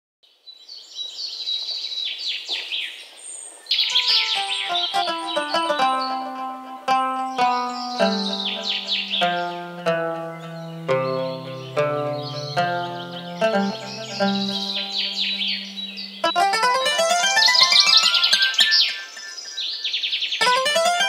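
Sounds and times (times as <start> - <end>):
birds chirping: 0.8 - 21.0
plucked-string music with bass: 4.0 - 18.8, 20.4 - 21.0.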